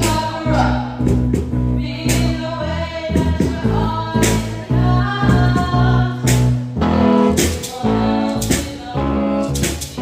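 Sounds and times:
girl singing pop song: 0.0s - 0.8s, 1.6s - 10.0s
amplified instrumental accompaniment: 0.0s - 10.0s.

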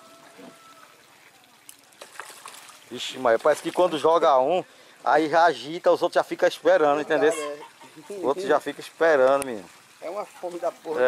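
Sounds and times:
small splash in pond water: 0.0s - 4.5s.

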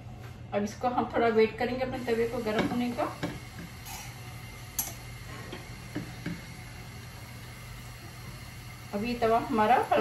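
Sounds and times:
gas stove hiss and hum: 0.0s - 10.0s.

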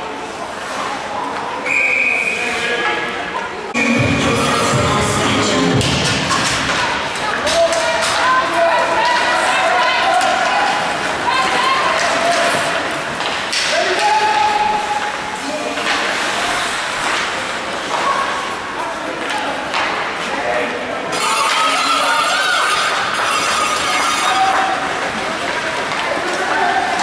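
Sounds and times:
people calling and shouting: 0.0s - 27.0s
hockey sticks and puck knocking: 11.9s - 14.2s.

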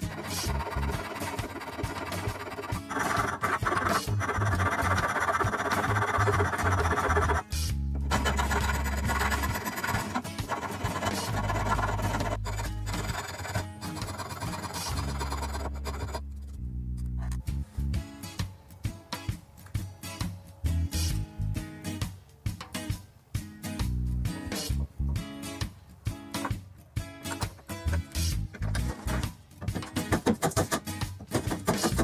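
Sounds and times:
hand file rasping on wood: 0.0s - 16.2s, 30.0s - 32.0s
background music with bass line: 0.0s - 32.0s.

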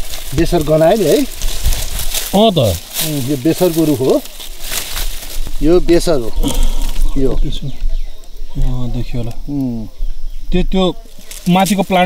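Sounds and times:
dry soil crackling: 0.0s - 12.0s
leaves and stems rustling: 0.0s - 12.0s
person speaking: 2.3s - 4.4s.

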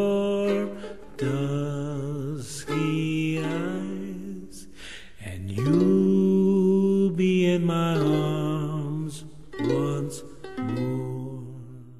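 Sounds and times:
man singing: 0.0s - 11.9s
ukulele: 0.0s - 11.9s.

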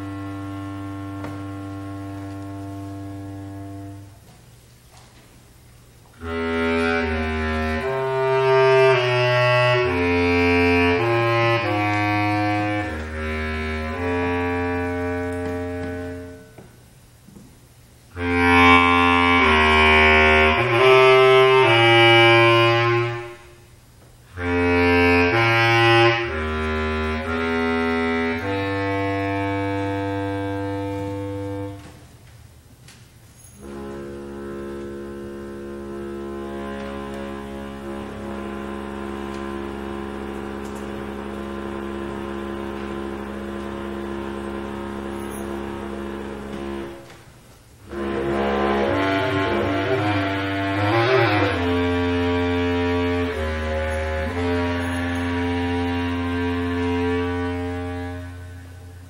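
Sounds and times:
bass clarinet low note: 0.0s - 4.4s, 6.2s - 16.7s, 18.1s - 23.7s, 24.3s - 32.2s, 33.6s - 59.0s.

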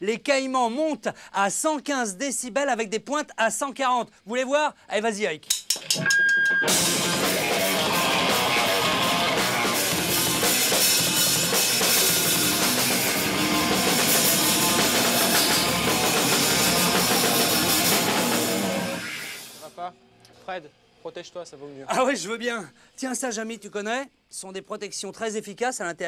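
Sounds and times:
drum kit: 5.5s - 19.7s
electric guitar: 5.8s - 19.6s
loud rock band playing: 5.9s - 19.6s.

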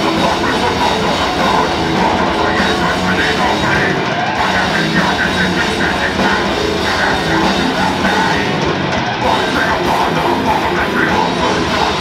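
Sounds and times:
death metal band playing: 0.0s - 12.0s
fast dense drumming: 0.0s - 12.0s
low growled vocals: 0.0s - 12.0s.

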